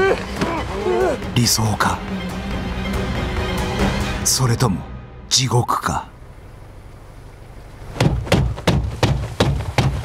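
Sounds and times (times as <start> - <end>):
low steady rumble: 6.0 - 8.2
hand pounding on car door: 8.0 - 10.0.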